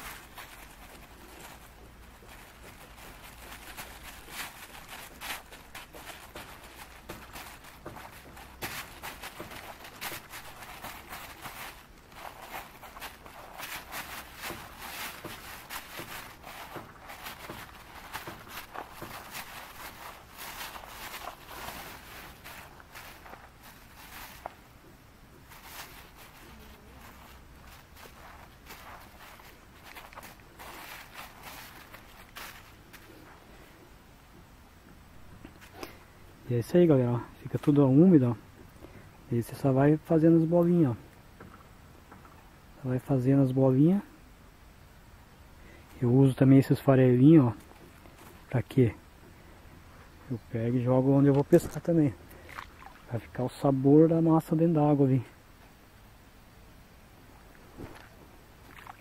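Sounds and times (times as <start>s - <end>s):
plastic bag crinkling: 0.0s - 24.7s, 25.3s - 33.4s
hand kneading bait mix: 0.0s - 34.0s, 35.2s - 44.2s, 45.8s - 55.4s, 57.6s - 59.0s.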